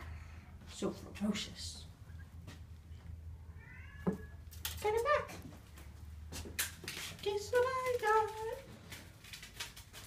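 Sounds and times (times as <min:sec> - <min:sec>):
cat meowing faintly: 0:03.5 - 0:04.4.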